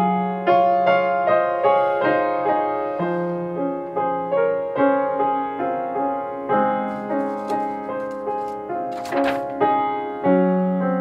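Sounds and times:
slow gentle piano piece: 0:00.0 - 0:11.0.

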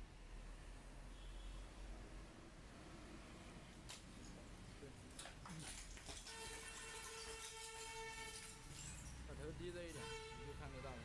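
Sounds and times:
horn-like tone: 0:09.9 - 0:10.9.

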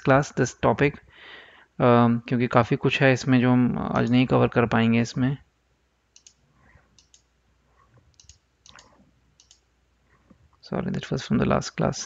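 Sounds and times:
faint computer mouse clicks: 0:06.2 - 0:06.4, 0:07.0 - 0:07.3, 0:08.0 - 0:09.6.

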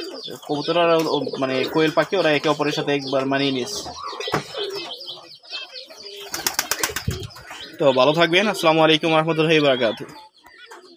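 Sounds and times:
faint bird chirps and coos: 0:00.0 - 0:10.9
pigeon flapping wings: 0:06.2 - 0:07.3.

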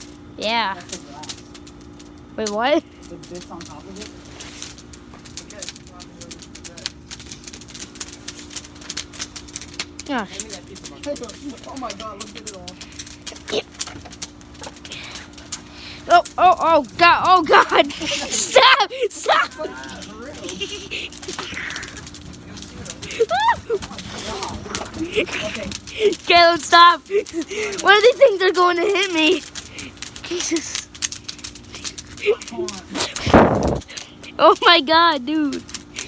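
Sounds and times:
campfire crackling: 0:00.0 - 0:36.0.

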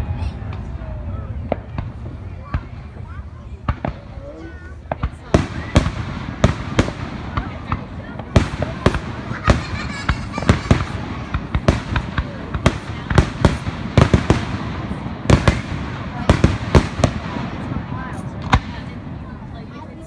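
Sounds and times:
fireworks bursting: 0:00.0 - 0:20.0.

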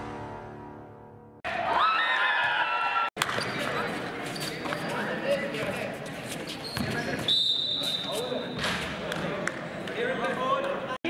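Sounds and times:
sneakers squeaking: 0:03.2 - 0:09.1
basketball bouncing on court: 0:06.7 - 0:07.1.

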